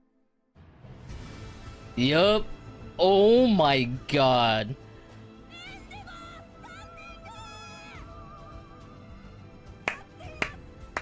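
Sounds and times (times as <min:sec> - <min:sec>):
soft background music: 0:00.6 - 0:11.0
sharp hand claps: 0:09.8 - 0:11.0.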